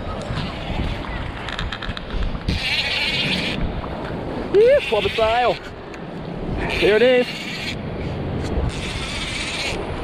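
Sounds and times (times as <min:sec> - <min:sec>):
wind: 0:00.0 - 0:10.0
fishing reel buzzing: 0:08.7 - 0:09.8.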